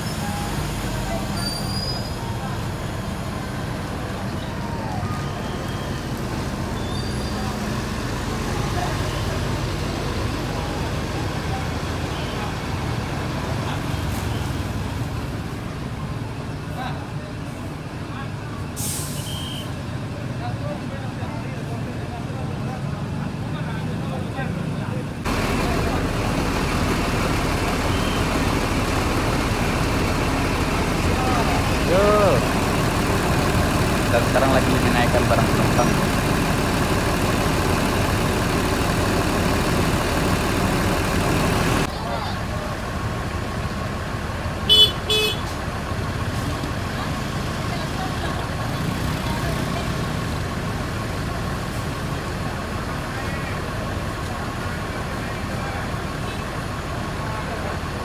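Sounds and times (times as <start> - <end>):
bus engine running: 0.0 - 58.0
street traffic noise: 0.0 - 58.0
vehicle horn beeps: 19.2 - 19.7, 44.7 - 45.5.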